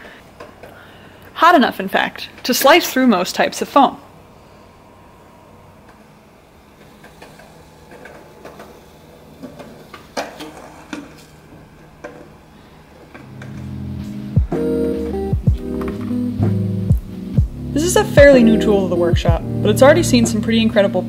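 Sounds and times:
computer fans humming: 0.0 - 21.0
guitar music: 13.2 - 21.0.

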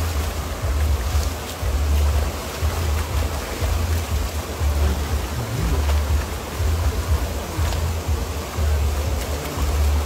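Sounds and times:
waterfall rushing: 0.0 - 10.0
wind rumbling on microphone: 0.0 - 10.0.

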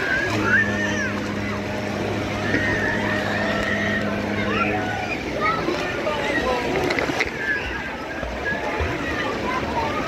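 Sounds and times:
motor humming: 0.0 - 9.8.

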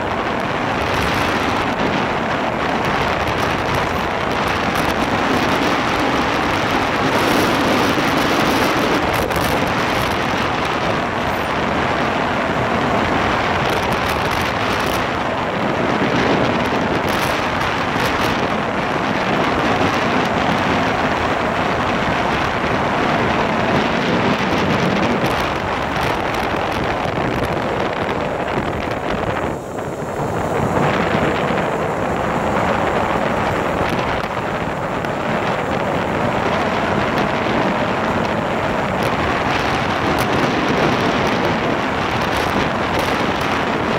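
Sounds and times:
motorcycle engine running: 0.0 - 43.9
wind rushing over microphone: 0.0 - 43.9.

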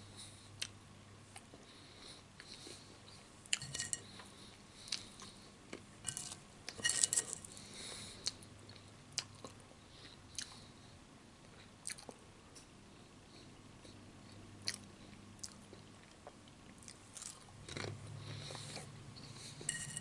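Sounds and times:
person chewing crunchy food: 14.6 - 19.8.

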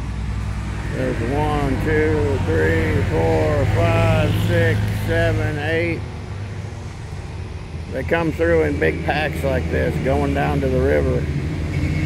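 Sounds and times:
four-wheeler engines droning: 0.0 - 12.0.

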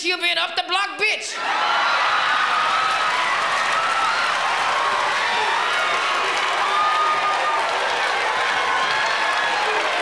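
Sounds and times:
audience laughing and applauding: 1.4 - 10.0.

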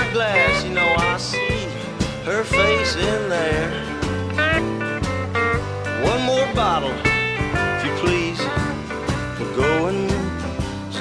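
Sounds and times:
country-rock band playing: 0.0 - 11.0
electric guitar lead bending notes: 0.0 - 11.0.

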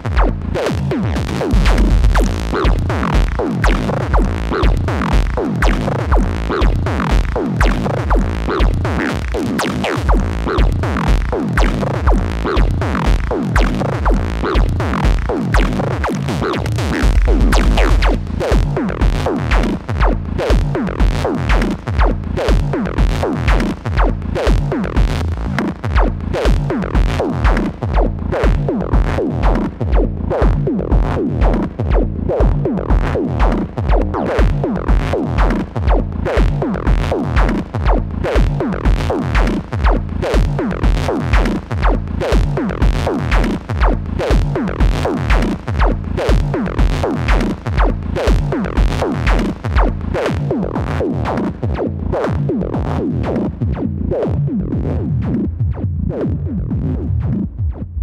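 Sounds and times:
four-on-the-floor kick drum: 0.0 - 58.0
percussive synth bass line: 0.0 - 58.0.

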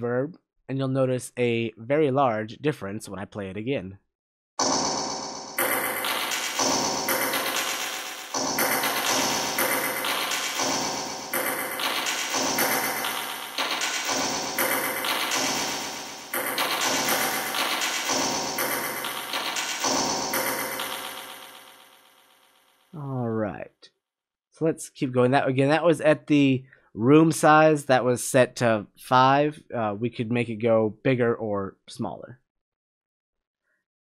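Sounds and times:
pitched notes with heavy reverb: 4.6 - 21.8.

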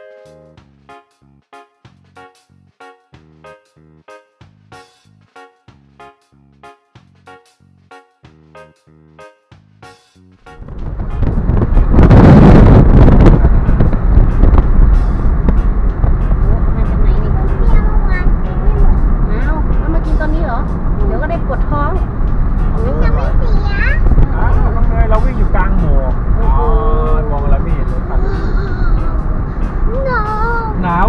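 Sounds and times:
road and wind noise: 8.3 - 31.0
loud rush of noise: 10.5 - 17.6.

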